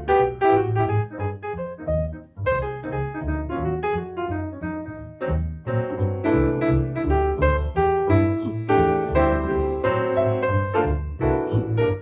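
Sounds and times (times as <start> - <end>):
piano chords and runs: 0.0 - 12.0
plucked double bass: 0.0 - 12.0.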